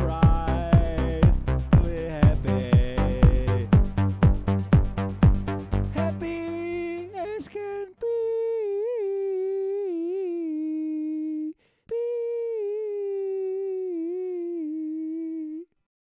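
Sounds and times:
man humming wavering notes: 0:00.0 - 0:04.2, 0:05.9 - 0:15.7.

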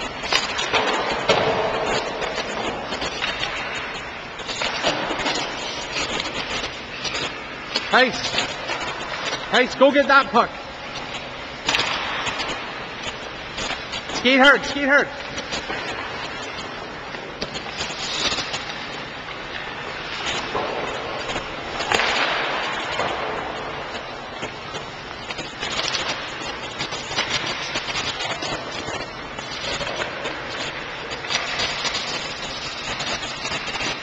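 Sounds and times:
hockey sticks and pucks clacking: 0:00.0 - 0:34.0
skate blades scraping ice: 0:00.0 - 0:34.0
steady background noise: 0:00.0 - 0:34.0.

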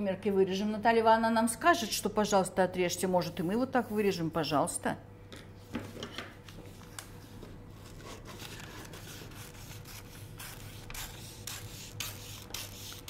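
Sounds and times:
scissors cutting paper: 0:07.8 - 0:13.0.

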